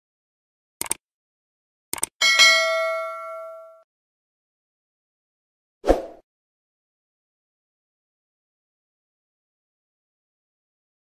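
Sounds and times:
bright bell ding: 0:02.2 - 0:03.8.

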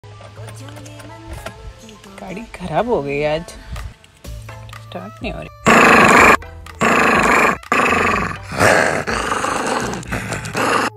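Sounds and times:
small dog growling: 0:05.6 - 0:10.9.

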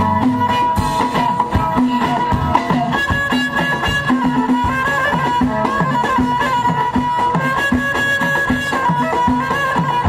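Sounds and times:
frame drums beating: 0:00.0 - 0:10.0
lute: 0:00.0 - 0:10.0
sliding violin melody: 0:00.0 - 0:10.0.

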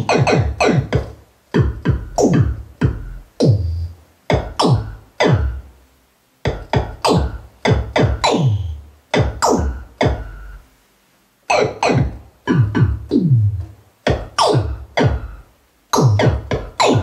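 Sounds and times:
synthesized bass drum hits: 0:00.0 - 0:05.7, 0:09.1 - 0:10.4, 0:11.6 - 0:15.4, 0:16.0 - 0:17.0.

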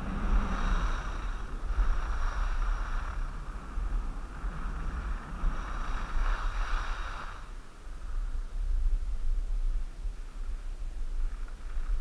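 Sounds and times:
skis scraping over snow: 0:00.0 - 0:12.0
wind buffeting microphone: 0:00.0 - 0:12.0.

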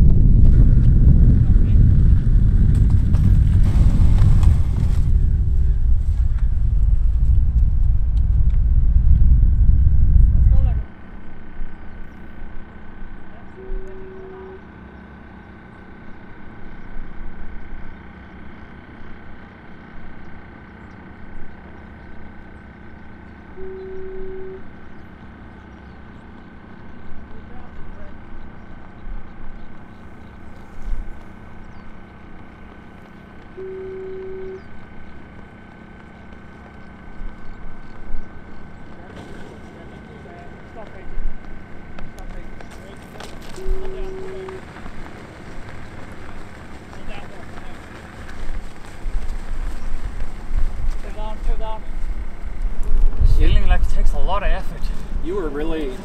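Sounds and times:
wind buffeting microphone: 0:00.0 - 0:10.9, 0:40.4 - 0:56.0
faint steady high tone: 0:13.4 - 0:14.7, 0:23.5 - 0:24.7, 0:33.5 - 0:34.7, 0:43.5 - 0:44.6
short beeps: 0:23.6 - 0:24.7, 0:33.6 - 0:34.6.

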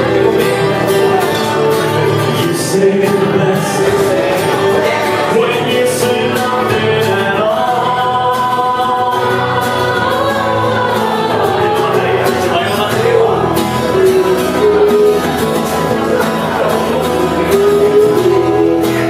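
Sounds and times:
acoustic guitar: 0:00.0 - 0:19.0
man singing: 0:00.0 - 0:19.0.

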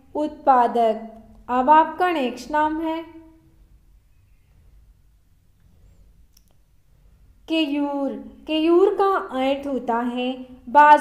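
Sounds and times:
faint room hum: 0:00.0 - 0:11.0
faint clicks: 0:05.6 - 0:06.6.

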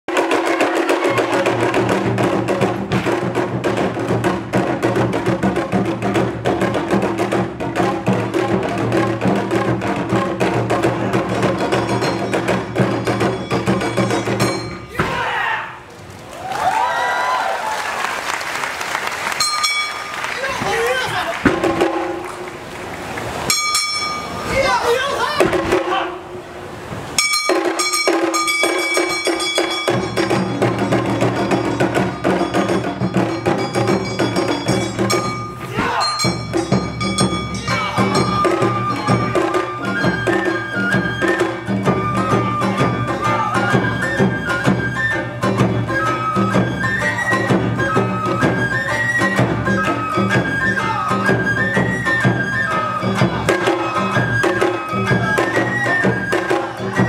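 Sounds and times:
drums in quick beat: 0:00.1 - 0:15.2, 0:20.4 - 0:22.5, 0:25.3 - 0:26.2, 0:27.2 - 0:57.0
shamisen: 0:00.1 - 0:15.4, 0:19.3 - 0:22.4, 0:23.5 - 0:24.8, 0:27.2 - 0:57.0
high ringing tones: 0:11.6 - 0:14.9, 0:19.4 - 0:20.4, 0:23.5 - 0:24.5, 0:27.2 - 0:40.7.

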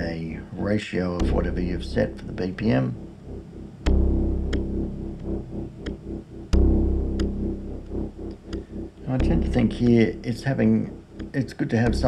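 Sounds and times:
loud low synth notes ringing: 0:01.1 - 0:12.0
synthesizer bass pattern with delay: 0:01.2 - 0:12.0.

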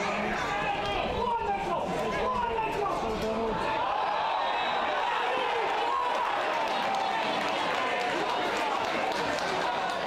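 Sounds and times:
men shouting and calling: 0:00.0 - 0:08.5.

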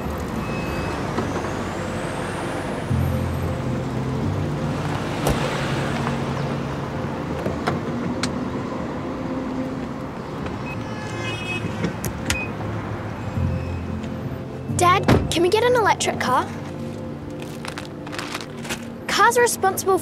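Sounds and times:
cars passing: 0:00.0 - 0:20.0.

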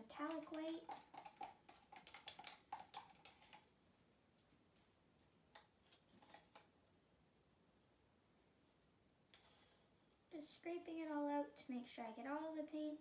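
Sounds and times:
stir stick tapping plastic cup: 0:00.0 - 0:03.7.

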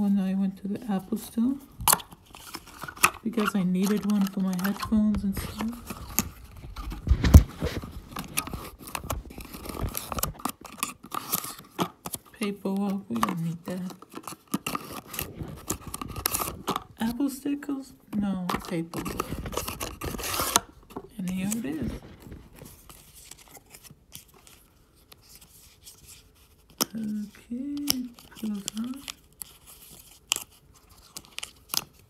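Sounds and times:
paper packaging crinkling: 0:00.8 - 0:17.5, 0:18.3 - 0:32.0.

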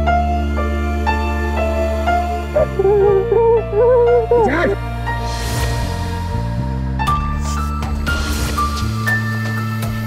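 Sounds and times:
wavering wordless voice: 0:02.5 - 0:04.9.

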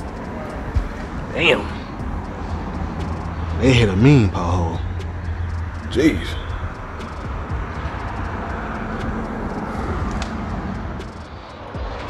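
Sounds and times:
faint ticks: 0:02.0 - 0:03.6, 0:04.9 - 0:12.0.

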